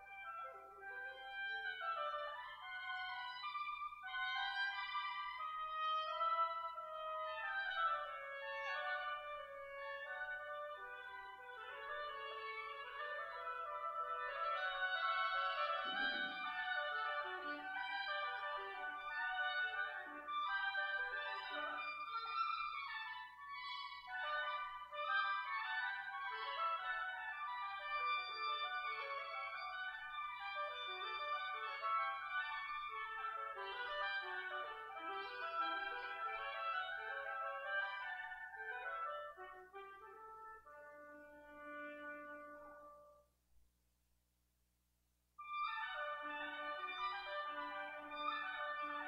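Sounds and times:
reed woodwind duet: 0.0 - 43.2, 45.4 - 49.0.

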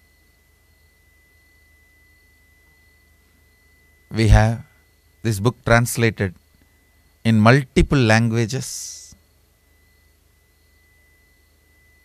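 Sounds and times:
faint high-pitched tone: 0.0 - 12.0
low hum: 0.0 - 12.0.

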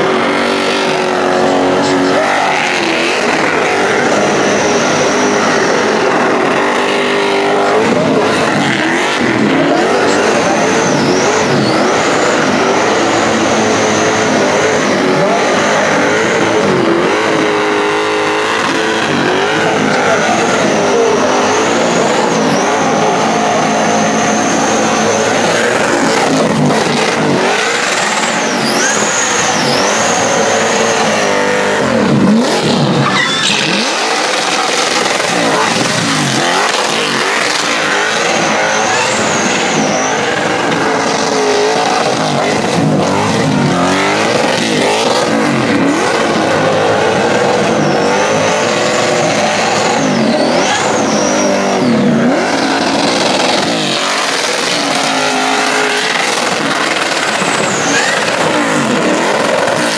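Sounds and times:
car engine revving: 0.0 - 59.9
tyre squeal: 0.0 - 59.9.

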